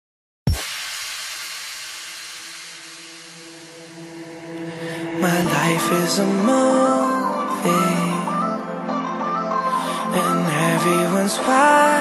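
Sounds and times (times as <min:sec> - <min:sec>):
sudden hit: 0:00.5 - 0:04.7
hissing noise wash: 0:00.5 - 0:07.0.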